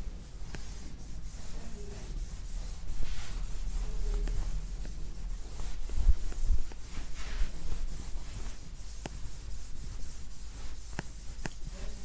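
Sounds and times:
rubbing and scratching on board: 0:00.0 - 0:12.0
steady low hum: 0:00.0 - 0:12.0.

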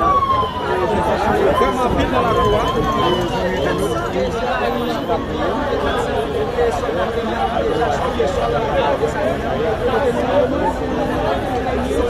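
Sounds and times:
siren wailing: 0:00.0 - 0:05.4
chatter of voices: 0:00.0 - 0:12.0.

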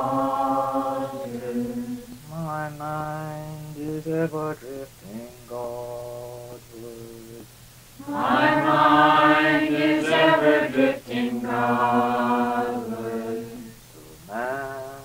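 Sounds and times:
steady low hum: 0:00.0 - 0:15.0
group of voices chanting: 0:08.0 - 0:13.7
single voice chanting: 0:08.0 - 0:15.0.

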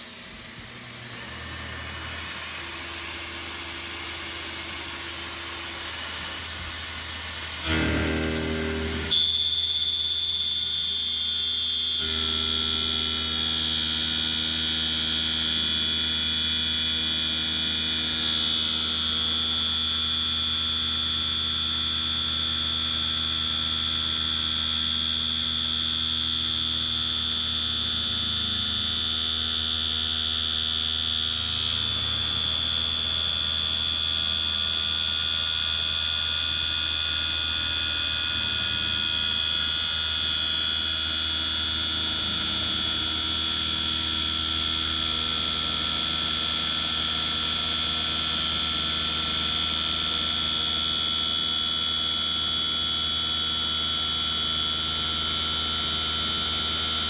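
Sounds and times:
end mill cutting steel whine: 0:00.0 - 0:57.0
mill spindle whine winding up: 0:00.0 - 0:57.0.

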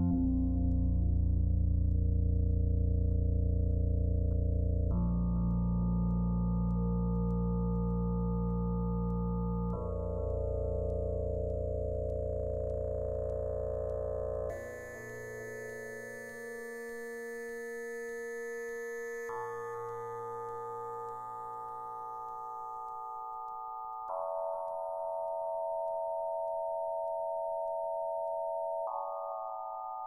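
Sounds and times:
synthesizer sustained chords: 0:00.0 - 0:23.4.

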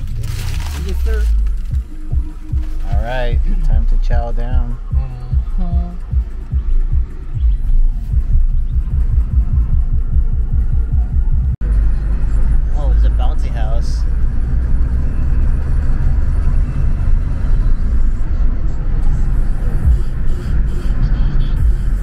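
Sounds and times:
car cabin rumble: 0:00.0 - 0:22.0
music playing: 0:00.0 - 0:22.0.

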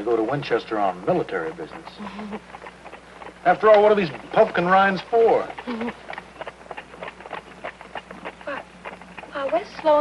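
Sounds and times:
horse hooves clip-clopping: 0:00.0 - 0:10.0.

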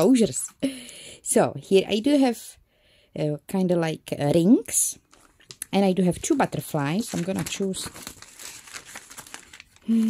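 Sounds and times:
pages rustling and flapping: 0:05.0 - 0:10.0.

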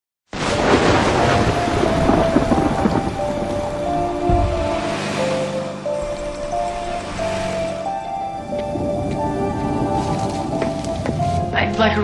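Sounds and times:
heavy rain: 0:00.3 - 0:12.0
deep low rumble: 0:00.6 - 0:12.0
faint sustained musical notes: 0:00.6 - 0:12.0.

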